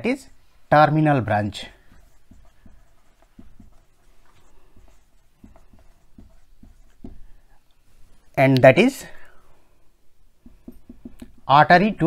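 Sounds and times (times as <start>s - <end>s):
marker pen writing on whiteboard: 0.0s - 8.8s, 10.4s - 12.0s.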